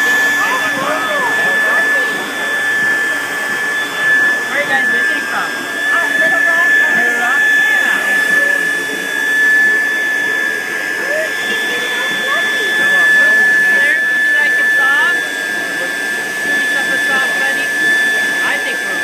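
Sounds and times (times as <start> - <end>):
stuffing machine blower whining: 0.0 - 19.0.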